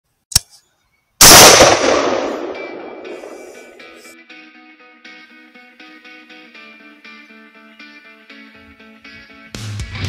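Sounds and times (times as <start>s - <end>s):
rifle shot echoing: 1.2s - 4.0s
guitar music: 2.3s - 10.0s.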